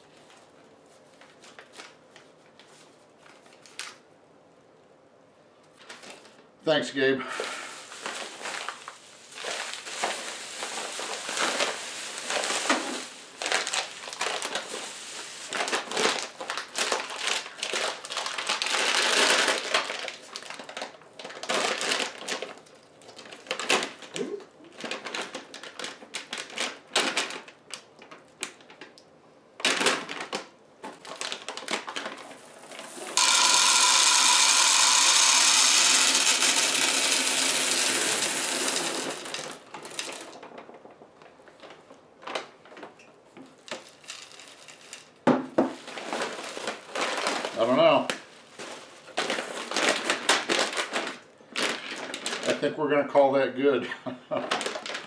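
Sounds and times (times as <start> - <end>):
bubble wrap handled: 0.0 - 4.1, 5.6 - 6.5, 7.3 - 29.0, 29.6 - 36.2, 38.0 - 52.7, 54.3 - 55.0
plastic bags crinkling: 0.1 - 4.1, 5.7 - 6.5, 7.3 - 35.4, 38.6 - 52.8, 54.3 - 55.0
candies pouring into wooden bowl: 7.4 - 19.8, 31.9 - 40.4, 43.8 - 45.1.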